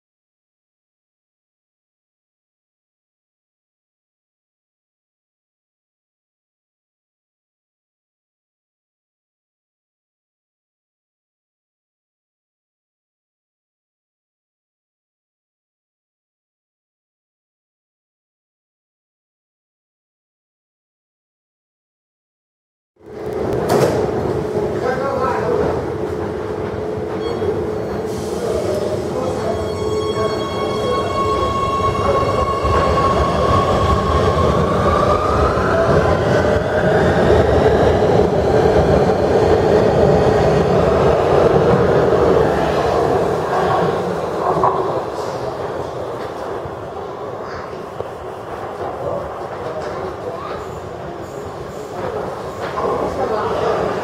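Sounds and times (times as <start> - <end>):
metro train approaching: 23.0 - 54.0.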